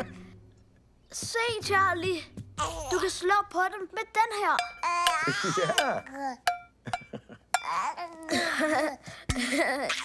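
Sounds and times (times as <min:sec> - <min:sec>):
baby babbling: 0:02.6 - 0:03.2, 0:04.8 - 0:06.4
utensil banging on cooking pot: 0:04.6 - 0:07.6.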